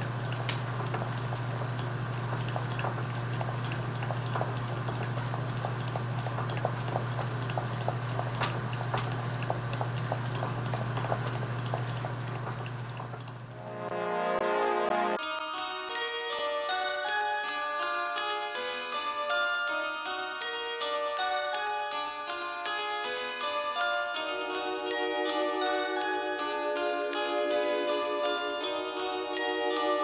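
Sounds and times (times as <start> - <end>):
music with clear notes: 13.6 - 30.0.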